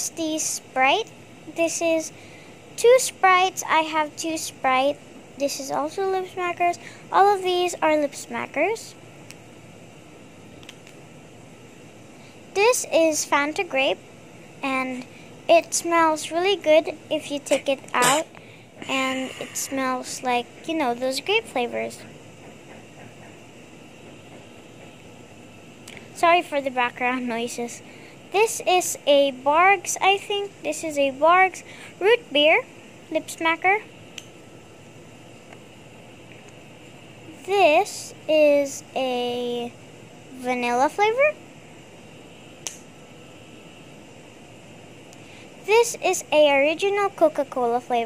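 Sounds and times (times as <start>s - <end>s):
low hiss of room noise: 0.0s - 48.0s.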